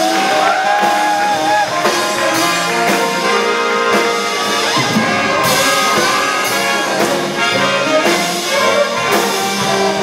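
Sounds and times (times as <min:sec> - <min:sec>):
jazz big band playing: 0:00.0 - 0:10.0.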